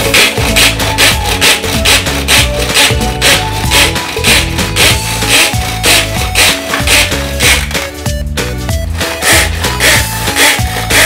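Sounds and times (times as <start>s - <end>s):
pull cord rasping: 0.0s - 7.9s, 9.1s - 11.0s
background music with steady beat: 0.0s - 11.0s.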